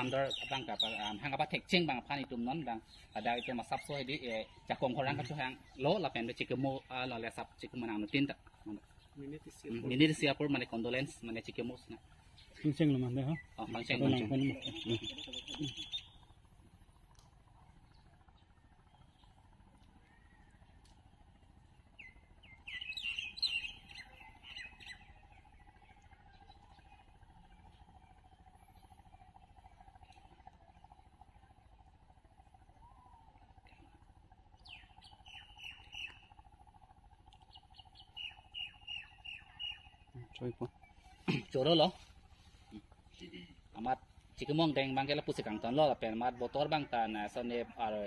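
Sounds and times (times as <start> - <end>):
bird chirping: 0.0 - 16.4, 21.6 - 32.0, 34.6 - 36.5, 37.3 - 42.6
thin steady tone: 0.0 - 48.0.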